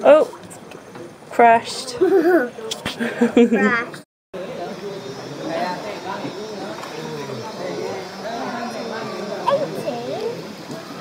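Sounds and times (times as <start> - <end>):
people talking and calling: 0.0 - 11.0.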